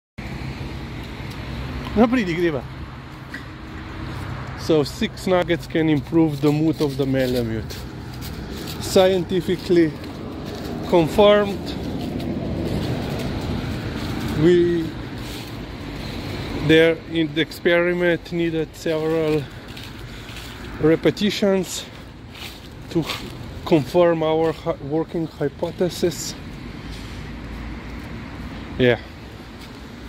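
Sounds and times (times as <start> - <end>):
street traffic rumble: 0.2 - 30.0.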